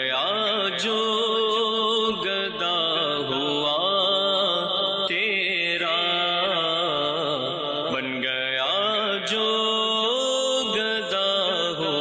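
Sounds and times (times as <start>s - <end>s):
man singing devotional poem: 0.0s - 12.0s.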